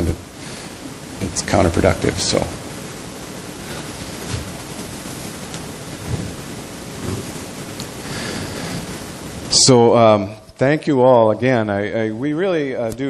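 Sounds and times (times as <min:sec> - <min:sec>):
steady rushing hiss: 0:00.0 - 0:13.0.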